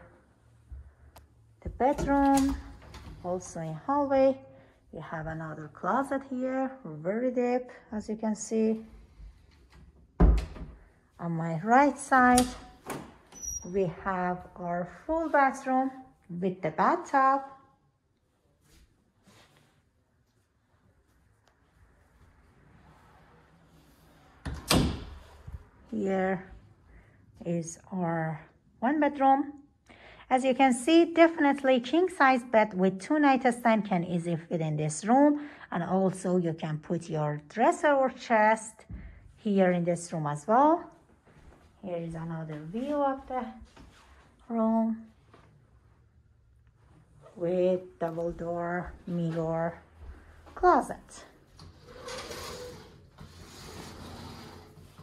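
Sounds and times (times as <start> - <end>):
faint door squeal: 13.3 - 13.9
sliding closet door rolling: 51.5 - 55.0.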